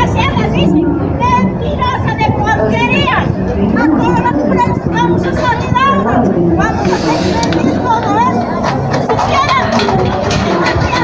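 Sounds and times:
steady low rumble: 0:00.0 - 0:10.3.

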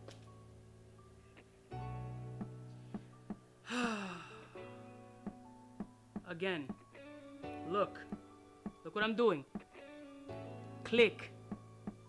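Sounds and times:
man sighing: 0:03.6 - 0:04.6
guitar music: 0:04.6 - 0:12.0.

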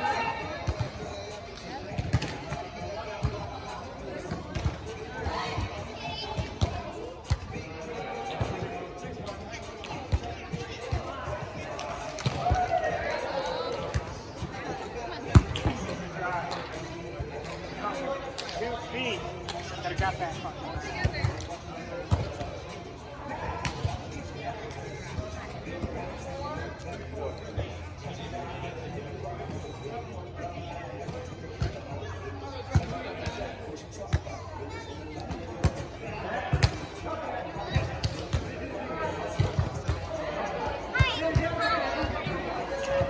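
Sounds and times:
players' voices: 0:00.0 - 0:43.0.

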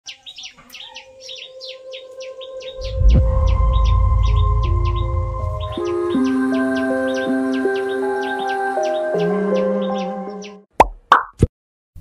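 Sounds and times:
birds chirping: 0:00.0 - 0:10.7
music with held notes: 0:01.7 - 0:10.6
loud deep rumble: 0:02.7 - 0:07.3.

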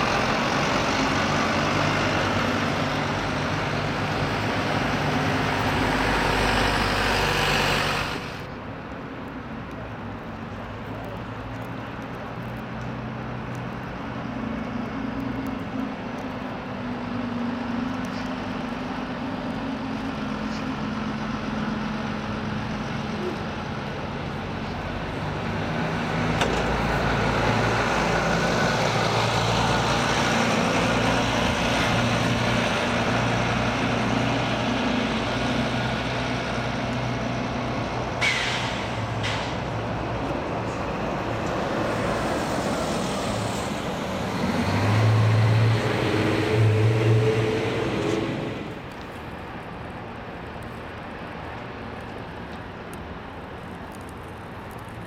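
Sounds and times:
diesel bus engines: 0:00.0 - 0:55.0
air brake hiss: 0:38.2 - 0:39.5.

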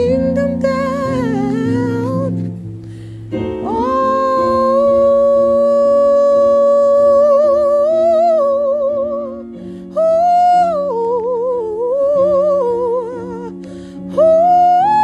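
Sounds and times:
woman singing wordlessly: 0:00.0 - 0:02.6, 0:03.5 - 0:15.0
held keyboard chords: 0:00.0 - 0:15.0.

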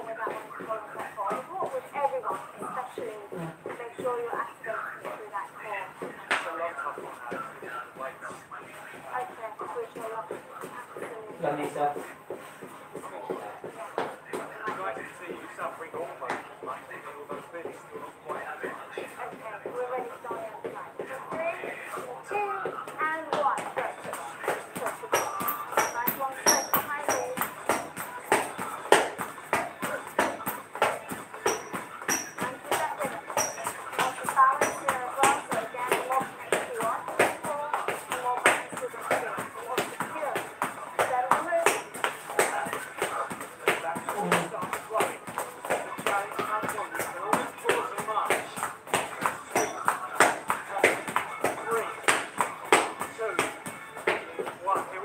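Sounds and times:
footfalls on hard floor: 0:16.2 - 0:55.0
music: 0:48.6 - 0:55.0.

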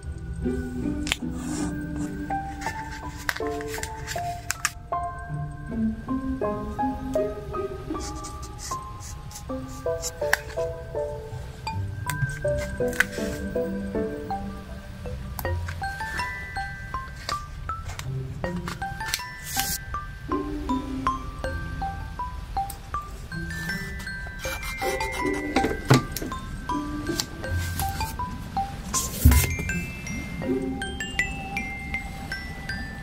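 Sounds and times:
soft instrumental music: 0:00.0 - 0:33.0
fingers rubbing a sticker on paper: 0:24.4 - 0:25.5.

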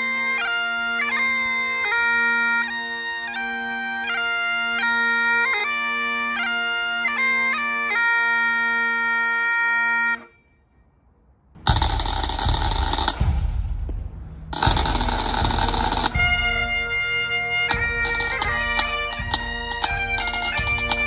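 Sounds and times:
pipe band playing: 0:00.0 - 0:10.4, 0:11.6 - 0:13.9, 0:14.5 - 0:21.0
solo bagpipe tune: 0:00.0 - 0:10.8, 0:14.6 - 0:21.0
drum rolls: 0:11.6 - 0:21.0.

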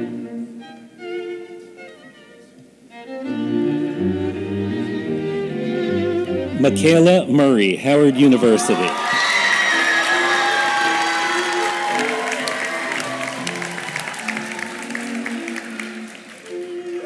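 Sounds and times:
string music with held notes: 0:00.0 - 0:07.4, 0:09.6 - 0:17.0
audience applauding and cheering: 0:07.9 - 0:17.0.

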